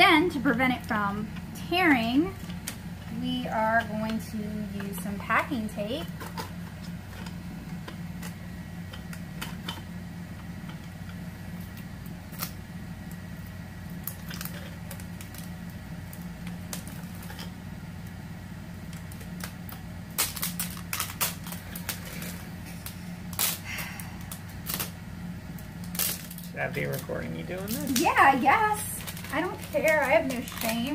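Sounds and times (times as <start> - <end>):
steady low hum: 0.0 - 30.9
packing tape crackling: 0.4 - 30.9.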